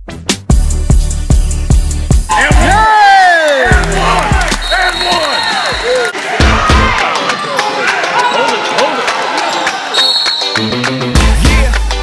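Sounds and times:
background music: 0.0 - 12.0
spectators' voices: 2.3 - 10.2.

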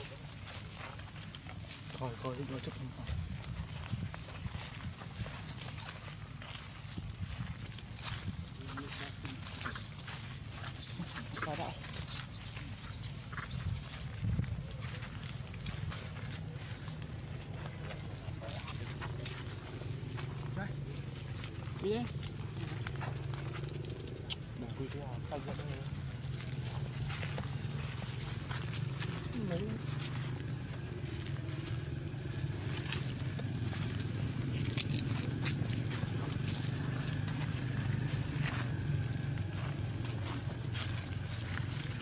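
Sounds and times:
rustling in dry leaves: 0.0 - 42.0
steady low hum: 0.0 - 42.0
monkeys squeaking: 8.0 - 15.5.

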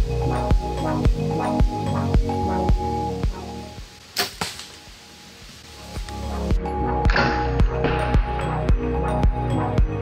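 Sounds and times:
background music with steady beat: 0.0 - 4.1, 4.8 - 10.0
bowstring release crack: 4.1 - 4.9
arrow striking animal: 4.2 - 4.8.

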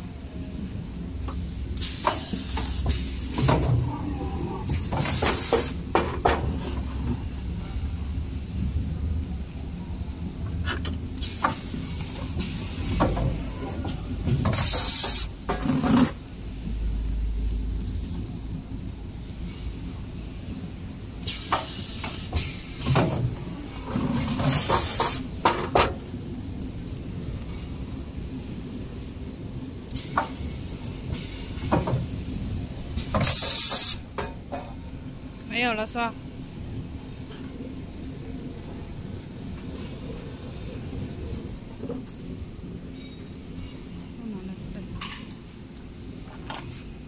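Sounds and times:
packing machine humming: 0.0 - 43.4.

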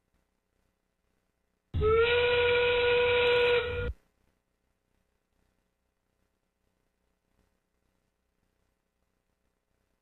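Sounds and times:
steam whistle: 1.8 - 3.9.

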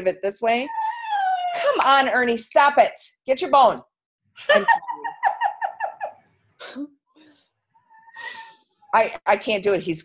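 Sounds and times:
dog whining: 0.6 - 1.6.

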